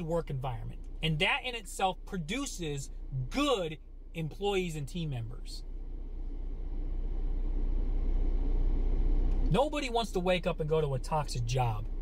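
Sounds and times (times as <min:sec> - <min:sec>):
low vehicle rumble: 0:00.0 - 0:12.0.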